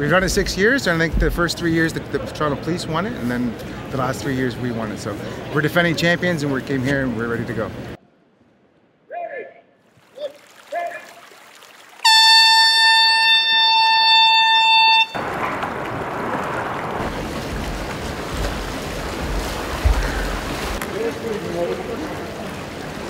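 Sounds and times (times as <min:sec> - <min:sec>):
people wading through water: 0:00.0 - 0:08.0, 0:09.9 - 0:23.0
air horn blast: 0:12.0 - 0:15.4.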